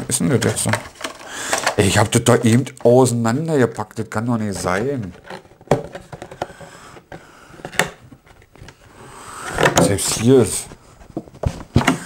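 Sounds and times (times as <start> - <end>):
plastic packaging clicking and crinkling: 0.1 - 3.2, 4.5 - 8.9.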